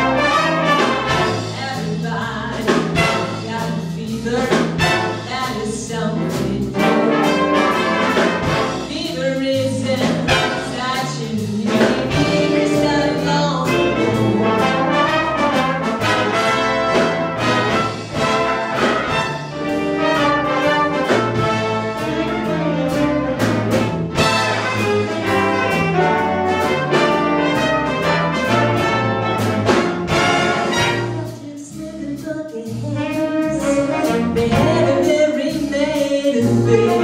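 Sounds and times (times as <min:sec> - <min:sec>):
big band playing swing: 0:00.0 - 0:37.0.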